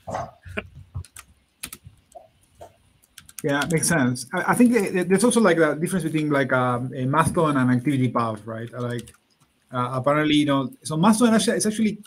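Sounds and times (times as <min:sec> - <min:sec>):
typing on computer keyboard: 0:01.0 - 0:02.2, 0:03.0 - 0:03.8, 0:08.7 - 0:09.2.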